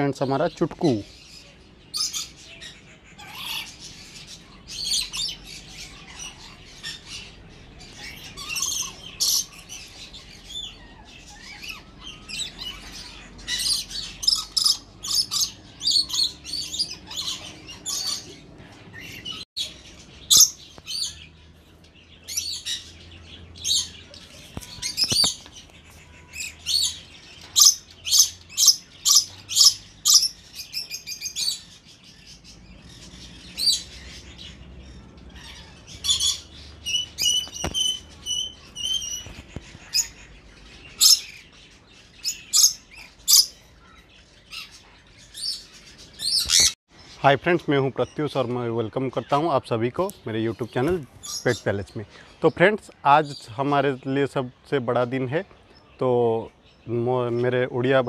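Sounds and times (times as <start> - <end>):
budgerigars chirping: 0.0 - 58.0
loud evenly spaced bird calls: 0.0 - 58.0.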